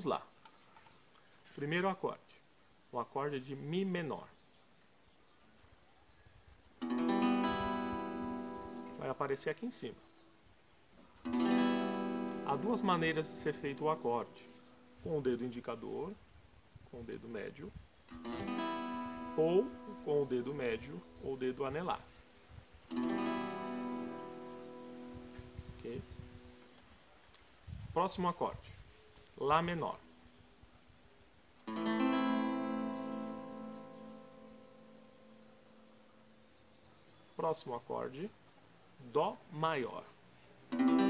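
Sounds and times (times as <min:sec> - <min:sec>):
guitar chord strummed: 0:06.8 - 0:09.1, 0:11.2 - 0:14.4, 0:18.1 - 0:21.1, 0:22.9 - 0:25.1, 0:31.7 - 0:35.4, 0:40.7 - 0:41.0.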